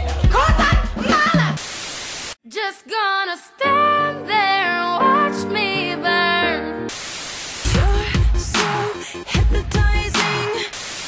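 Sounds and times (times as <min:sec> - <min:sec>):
static hiss: 0:01.6 - 0:02.4, 0:06.9 - 0:07.8, 0:10.7 - 0:11.0.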